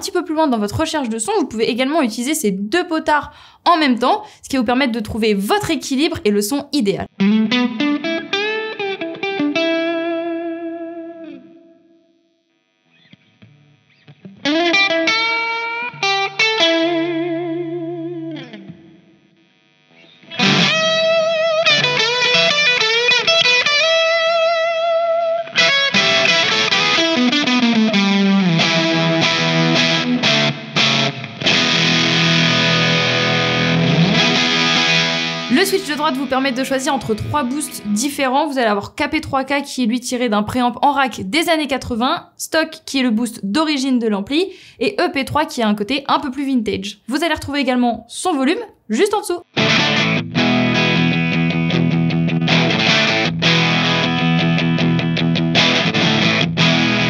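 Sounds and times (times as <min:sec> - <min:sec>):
electric guitar single-note phrases: 0:07.0 - 0:38.5, 0:49.4 - 0:57.0
electric guitar strummed chords: 0:07.1 - 0:38.0, 0:49.5 - 0:57.0.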